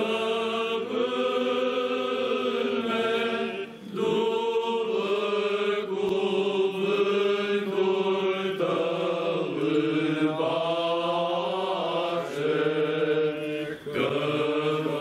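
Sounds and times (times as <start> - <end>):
men chanting a hymn: 0.0 - 15.0.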